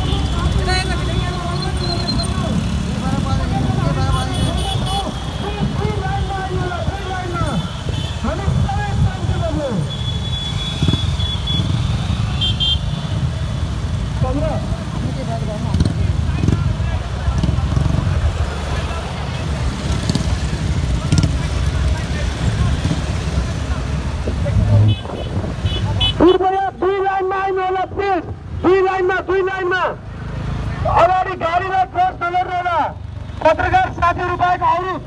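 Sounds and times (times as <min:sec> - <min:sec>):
motorcycle engines rumbling: 0:00.0 - 0:35.0
motorcycle horn toots: 0:04.2 - 0:05.5, 0:09.9 - 0:13.0, 0:24.8 - 0:26.4.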